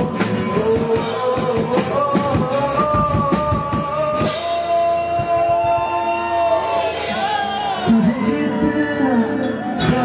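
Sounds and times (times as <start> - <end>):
live rock band: 0.0 - 10.0
man singing: 0.0 - 10.0.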